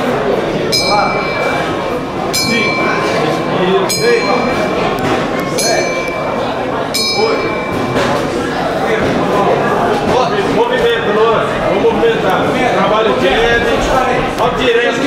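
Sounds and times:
voices in echoing hall: 0.0 - 15.0
small metal bell ringing: 0.7 - 8.2.

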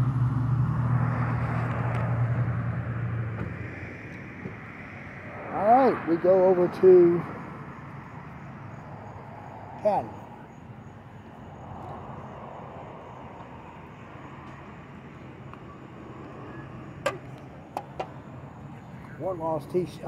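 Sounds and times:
road traffic hum: 0.0 - 20.0
man speaking: 5.4 - 7.4, 9.8 - 10.2, 19.2 - 20.0.

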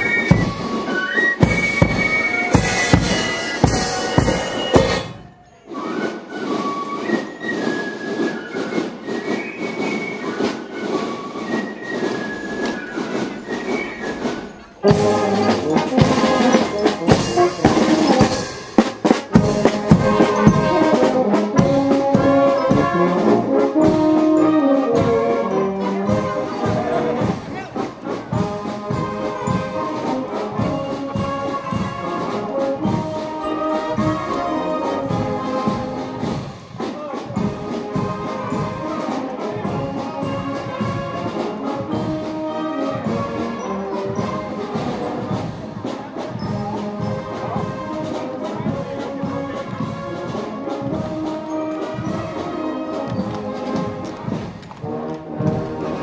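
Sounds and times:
brass band playing a march: 0.0 - 56.0
drum beat: 0.2 - 5.3, 14.8 - 23.1.

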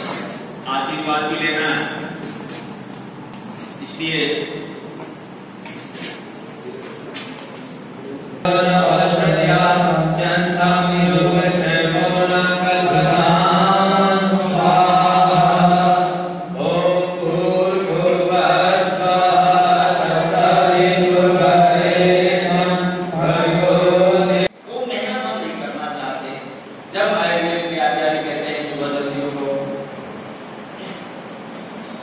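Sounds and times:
steady low hum: 0.0 - 32.0
group chanting in unison: 8.4 - 24.5.

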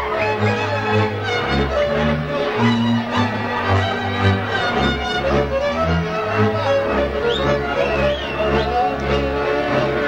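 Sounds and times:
chord accompaniment: 0.0 - 10.0
fiddle melody: 0.0 - 10.0.

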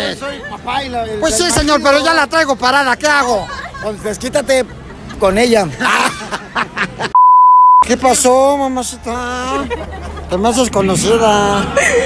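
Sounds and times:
laughter: 3.3 - 7.2, 9.5 - 10.5, 11.5 - 12.0
censor bleep: 7.2 - 7.9.

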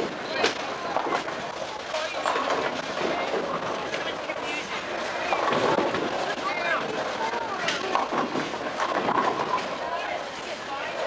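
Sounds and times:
background chatter: 0.0 - 11.0
clatter of bowling lanes: 0.0 - 11.0.

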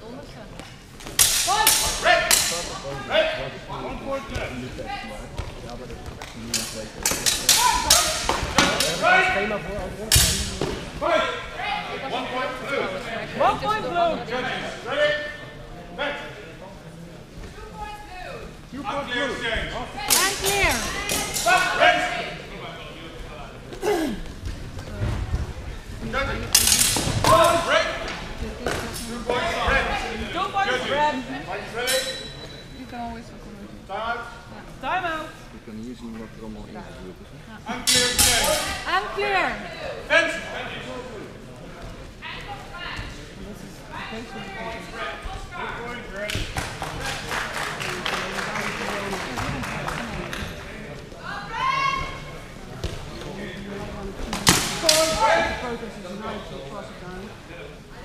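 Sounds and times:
sharp impacts of fencing blows: 1.0 - 2.7, 26.5 - 27.7
people shouting in echoing hall: 51.2 - 52.4.

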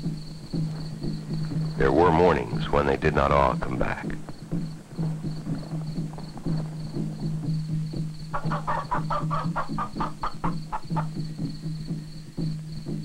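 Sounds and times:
film score with low drone: 0.0 - 8.6
faint pulsing high chirping: 0.0 - 13.0.

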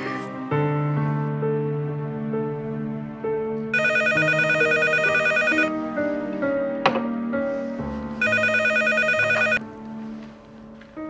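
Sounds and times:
music with sustained notes: 0.0 - 8.3, 9.6 - 11.0
telephone ringing: 3.8 - 5.8, 8.2 - 9.6.

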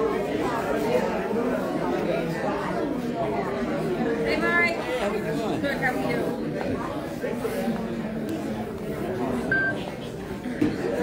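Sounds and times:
murmur of overlapping voices: 0.0 - 11.0.

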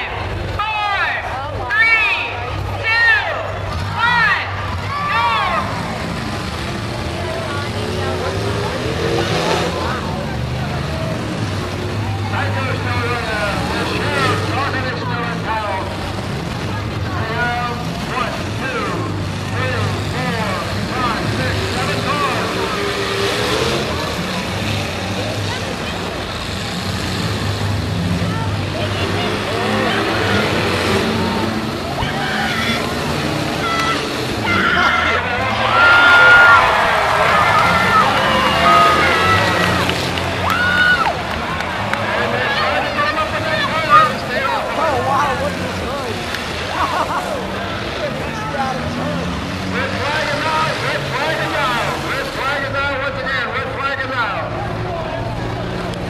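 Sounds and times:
car engines revving: 0.0 - 56.0
crowd shouting and talking: 0.0 - 56.0.

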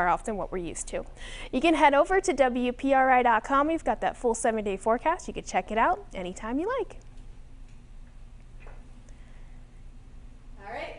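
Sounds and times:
low steady hum: 0.0 - 10.9.

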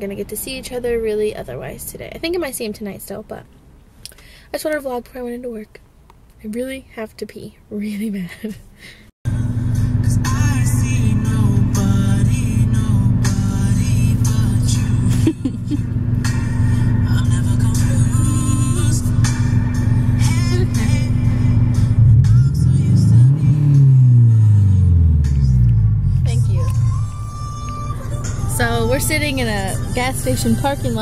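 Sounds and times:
deep falling tones: 9.3 - 30.5
music on car stereo: 9.3 - 31.0
steady low cabin hum: 9.3 - 31.0.

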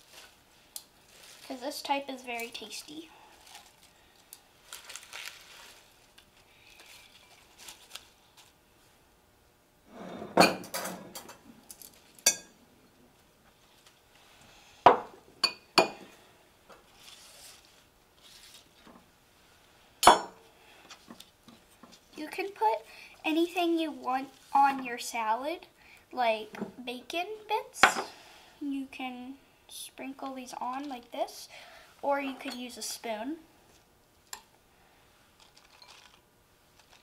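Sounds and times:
salad leaves rustling: 0.0 - 8.6, 16.9 - 18.8
tongs clinking on bowls: 11.8 - 12.6.

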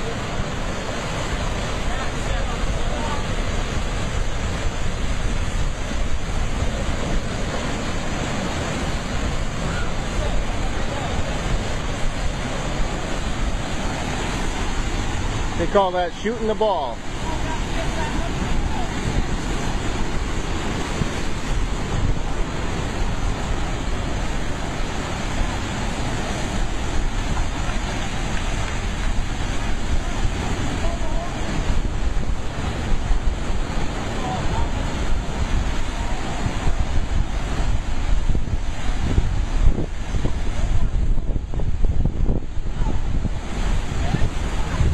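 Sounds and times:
sea surf rushing over rocks: 0.0 - 44.9
wind buffeting microphone: 0.0 - 44.9.

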